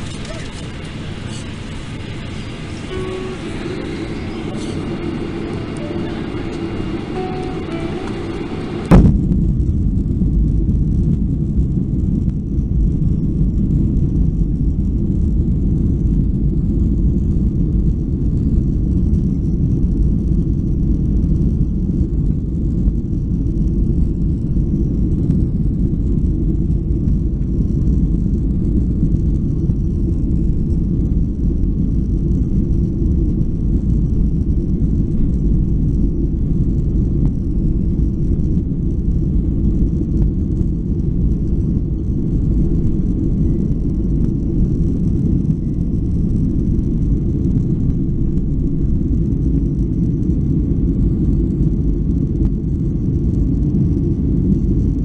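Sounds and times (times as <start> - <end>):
jet engines low rumble: 0.0 - 55.0
thump: 8.9 - 9.2.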